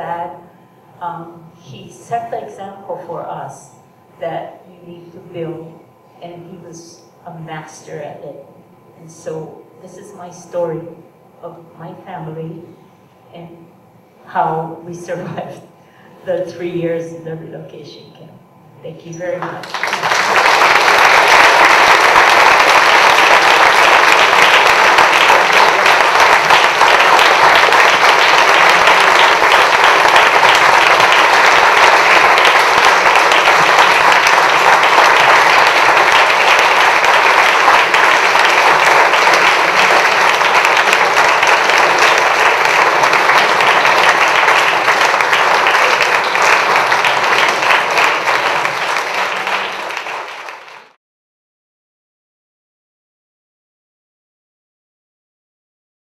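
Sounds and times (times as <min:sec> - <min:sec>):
audience applauding: 0:19.4 - 0:51.0.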